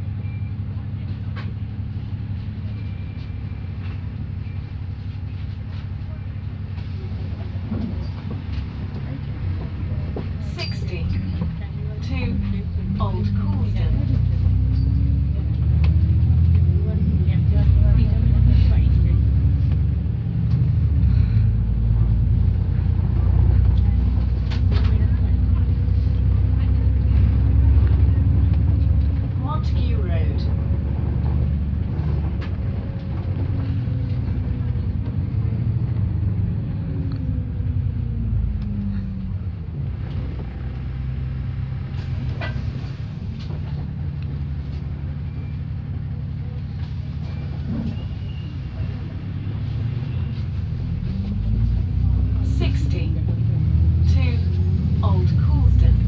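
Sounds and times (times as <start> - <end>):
bus engine rumble: 0.0 - 56.0
drivetrain whine: 0.0 - 56.0.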